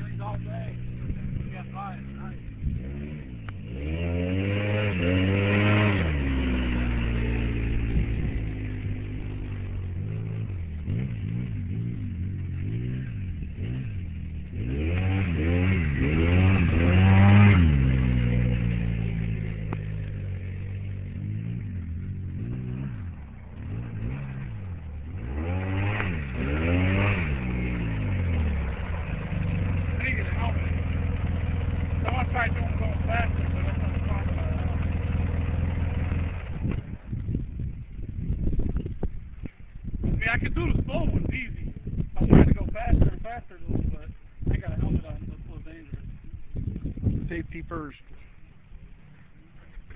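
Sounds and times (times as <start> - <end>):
atv engine revving and idling: 0.0 - 49.9.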